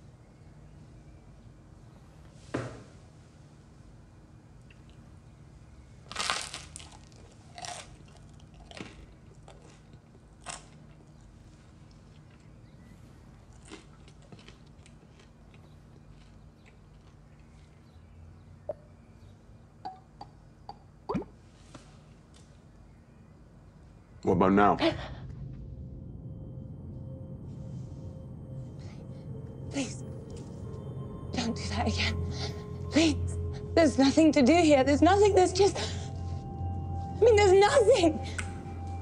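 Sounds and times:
crunching crisp toast: 0:06.0 - 0:11.4, 0:13.4 - 0:17.9.

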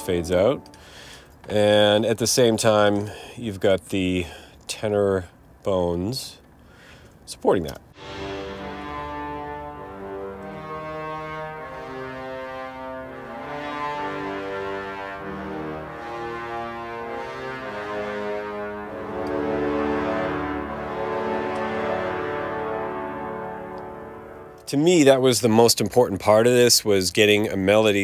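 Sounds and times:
orchestral brass chords: 0:00.0 - 0:01.3, 0:07.9 - 0:25.4.

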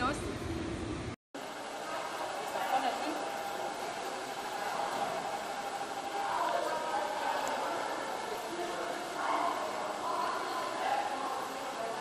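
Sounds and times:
swimming pool hall background noise: 0:00.0 - 0:12.0
faint echoing voices: 0:01.4 - 0:12.0.

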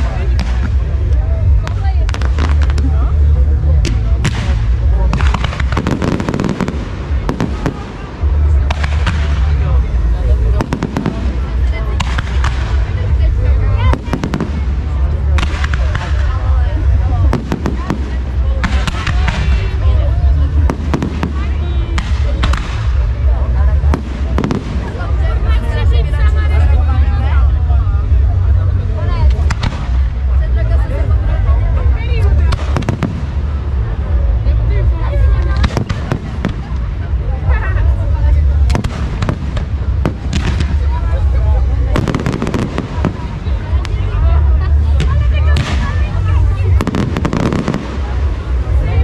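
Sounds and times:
fireworks crackling: 0:00.0 - 0:25.9, 0:29.2 - 0:30.6, 0:31.8 - 0:49.0
fireworks bangs: 0:03.8 - 0:13.2, 0:13.8 - 0:25.3, 0:32.4 - 0:34.0, 0:35.3 - 0:37.2, 0:38.6 - 0:44.2, 0:44.8 - 0:49.0.

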